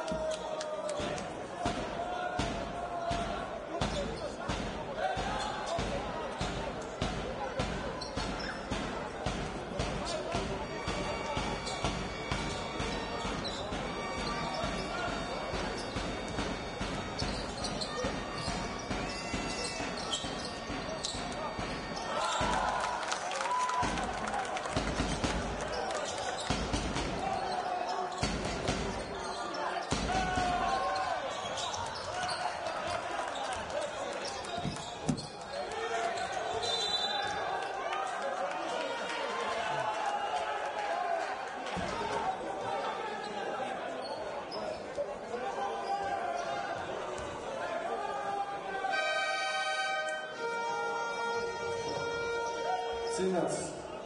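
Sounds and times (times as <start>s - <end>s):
crowd noise and voices: 0.0s - 54.0s.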